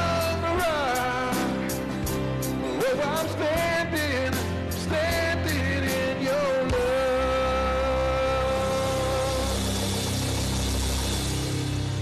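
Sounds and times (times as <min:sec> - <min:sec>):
low keyboard and bass tones: 0:00.0 - 0:12.0.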